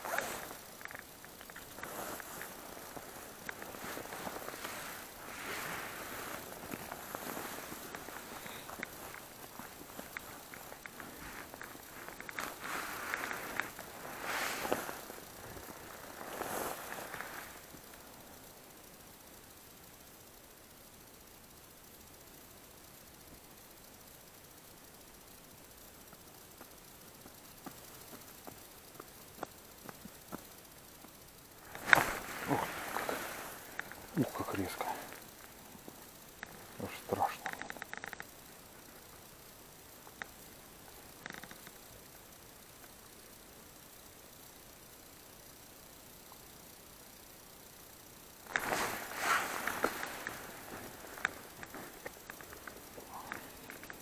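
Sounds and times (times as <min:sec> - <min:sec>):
sharp clicks: 0:00.0 - 0:16.1, 0:26.0 - 0:39.4, 0:40.0 - 0:41.9
rustling handling noise: 0:00.0 - 0:18.4, 0:31.6 - 0:38.1, 0:48.4 - 0:54.0.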